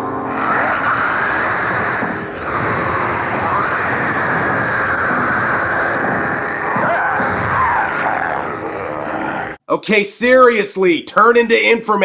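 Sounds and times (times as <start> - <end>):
dense noisy soundtrack with sweeps: 0.0 - 9.6.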